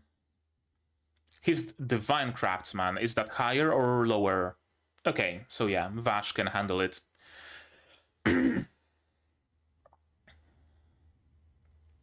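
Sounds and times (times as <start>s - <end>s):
man clearing throat: 8.2s - 8.8s.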